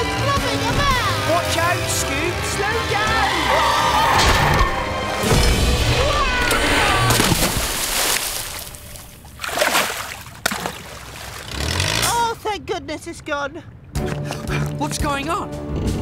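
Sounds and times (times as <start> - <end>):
cartoon water splashing: 6.2 - 12.1.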